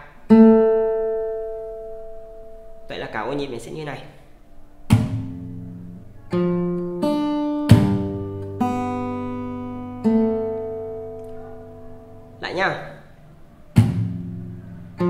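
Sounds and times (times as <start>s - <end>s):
fingerstyle acoustic guitar: 0.1s - 2.9s, 4.4s - 12.4s, 13.0s - 15.0s
percussive hits on guitar: 4.9s - 5.6s, 7.7s - 8.6s, 13.8s - 14.5s.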